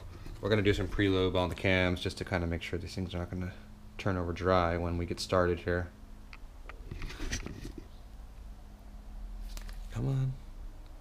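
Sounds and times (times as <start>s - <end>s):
faint low hum: 0.0s - 11.0s.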